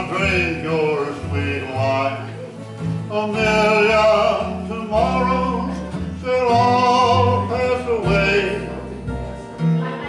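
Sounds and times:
acoustic guitar: 0:00.0 - 0:10.0
upright bass plucking: 0:00.0 - 0:10.0.

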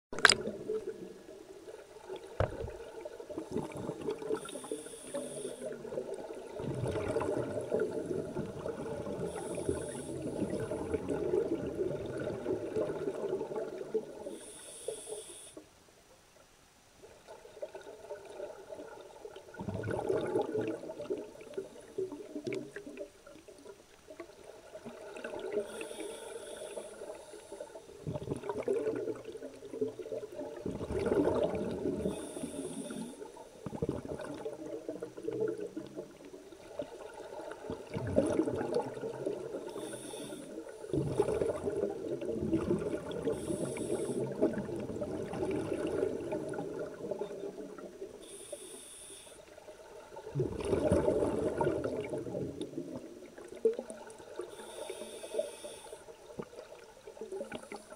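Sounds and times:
bubbling exhaled air: 0:02.2 - 0:15.5, 0:19.5 - 0:23.0, 0:25.0 - 0:36.2, 0:37.5 - 0:49.3, 0:50.2 - 0:56.0
regulator hissing on inhalation: 0:04.4 - 0:05.8, 0:09.2 - 0:10.6, 0:14.3 - 0:15.6, 0:25.6 - 0:27.8, 0:32.0 - 0:33.3, 0:39.7 - 0:40.6, 0:43.3 - 0:44.4, 0:48.2 - 0:49.4, 0:54.5 - 0:56.0.

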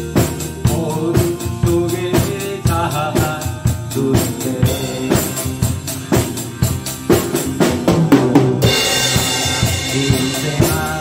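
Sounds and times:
backing song: 0:00.0 - 0:11.0
drum hits: 0:00.0 - 0:11.0
cymbal crash: 0:08.6 - 0:10.5.

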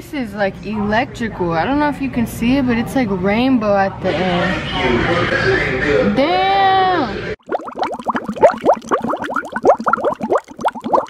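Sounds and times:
water bubbling: 0:07.4 - 0:11.0.

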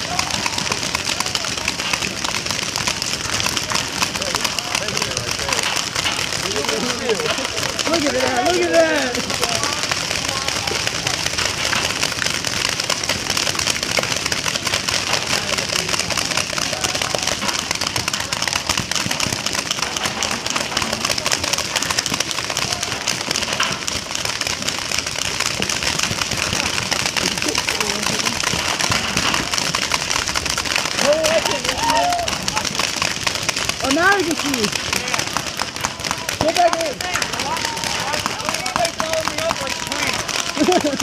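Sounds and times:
paintball markers firing: 0:00.0 - 0:41.0
people shouting: 0:00.0 - 0:41.0.

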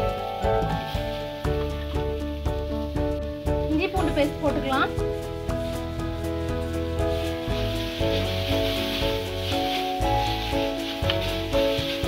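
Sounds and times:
background music: 0:00.0 - 0:12.0
onions sizzling in oil: 0:00.0 - 0:12.0.

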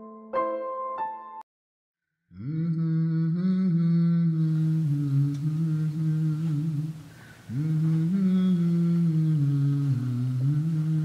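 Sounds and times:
person humming a slow melody: 0:02.3 - 0:11.0.

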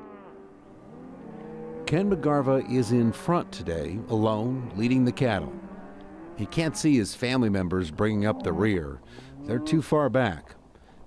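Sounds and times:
cattle lowing: 0:00.0 - 0:11.0
man speaking: 0:01.9 - 0:05.5, 0:06.4 - 0:10.6.

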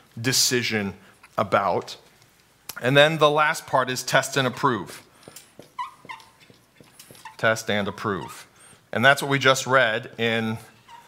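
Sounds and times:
marker squeaks: 0:05.2 - 0:08.8, 0:10.6 - 0:11.0.

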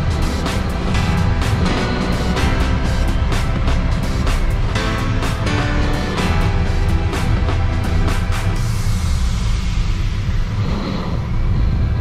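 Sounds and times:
drum hits: 0:00.0 - 0:10.1
heavy bass line: 0:00.0 - 0:12.0.

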